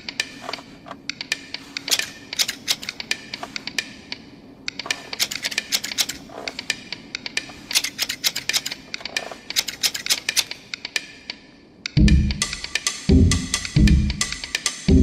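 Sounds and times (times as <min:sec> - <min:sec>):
rapid sharp clicks: 0:00.0 - 0:11.4.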